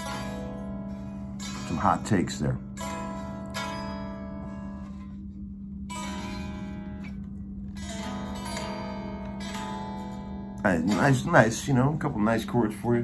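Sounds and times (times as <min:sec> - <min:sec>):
electric guitar chords ringing: 0:00.0 - 0:13.0
steady low hum: 0:00.0 - 0:13.0.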